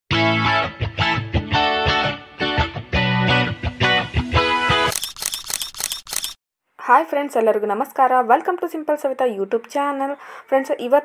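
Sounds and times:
rapid sharp clicks: 4.9 - 6.4.

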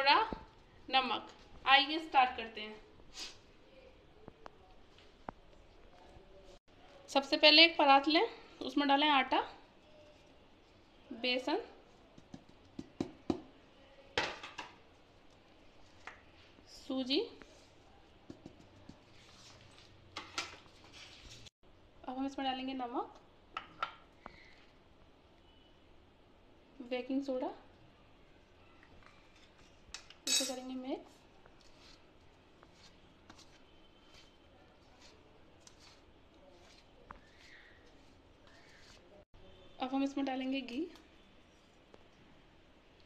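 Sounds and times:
metal spoon clinking steel bowl: 30.3 - 30.7.

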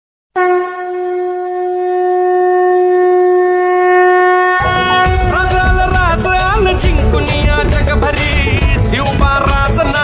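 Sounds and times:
ceremonial horn long note: 0.3 - 5.8.

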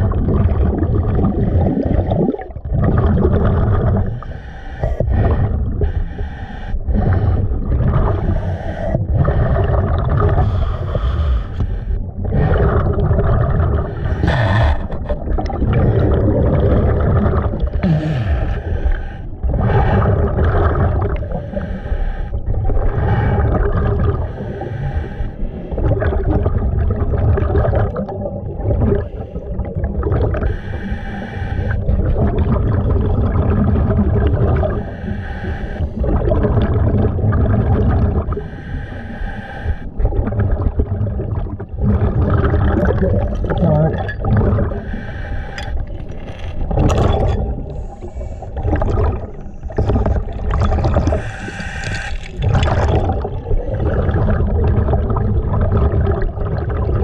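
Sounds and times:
bubbling exhales: 0.0 - 57.0
diver breathing through regulator: 3.8 - 13.0, 13.6 - 25.9, 28.9 - 32.0, 34.6 - 36.5, 38.2 - 40.0, 44.6 - 54.3.

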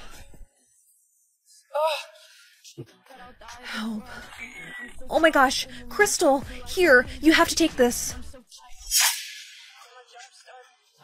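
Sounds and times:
shimmering sound effect: 8.8 - 10.0.

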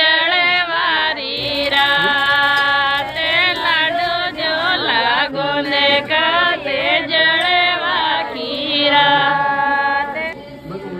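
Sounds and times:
woman singing folk song: 0.0 - 10.4.

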